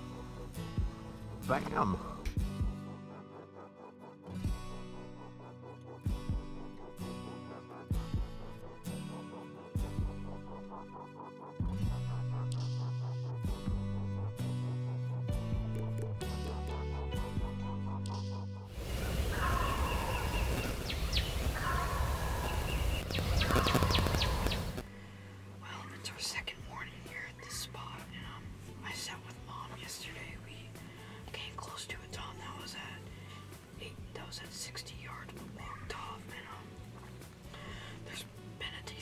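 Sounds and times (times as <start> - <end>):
turkey gobbling: 18.8 - 24.8.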